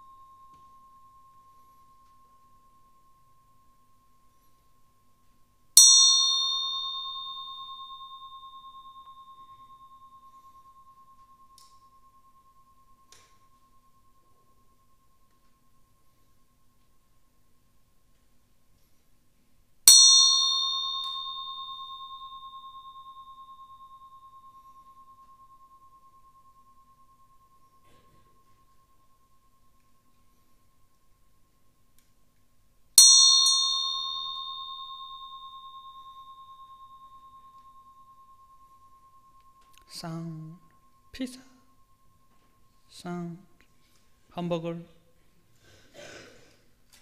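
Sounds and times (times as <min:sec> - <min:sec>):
small bell ringing: 0:00.0 - 0:17.3, 0:19.9 - 0:32.4, 0:33.0 - 0:44.4.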